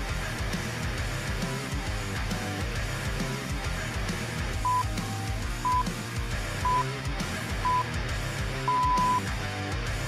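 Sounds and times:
guitar-led background music: 0.0 - 10.0
short electronic beeps: 4.6 - 4.9, 5.6 - 5.9, 6.6 - 6.9, 7.6 - 7.9, 8.7 - 9.2.

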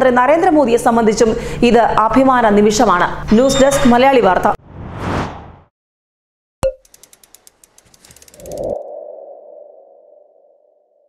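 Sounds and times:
quickening ticks: 6.8 - 8.8.

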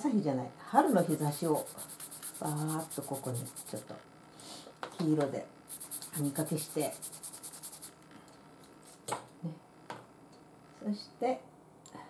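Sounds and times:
paintbrush scrubbing on paper: 0.8 - 3.8, 5.7 - 7.9.

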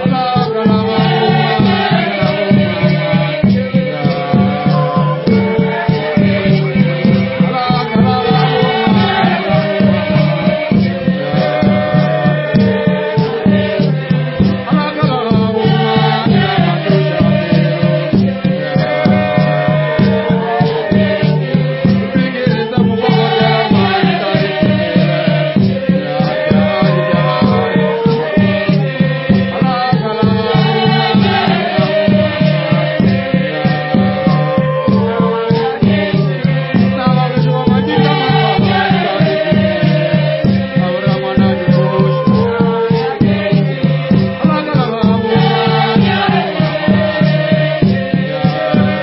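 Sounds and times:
choir singing in harmony: 0.0 - 49.0
low drum beat: 0.0 - 49.0.

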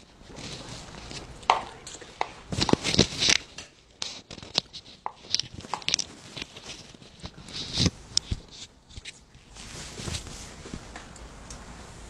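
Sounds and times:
taps and knocks of hard objects: 1.5 - 3.7, 4.3 - 6.0.

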